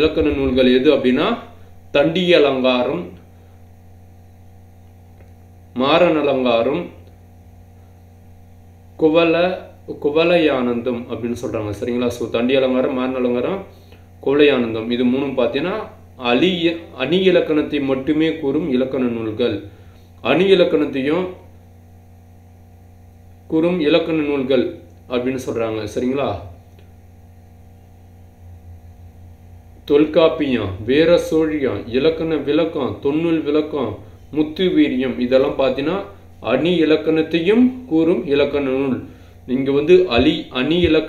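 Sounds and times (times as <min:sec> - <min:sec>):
man's voice: 0:00.0 - 0:03.1, 0:29.9 - 0:41.0
man speaking: 0:00.0 - 0:03.2, 0:29.9 - 0:41.0
low electrical hum: 0:00.0 - 0:41.0.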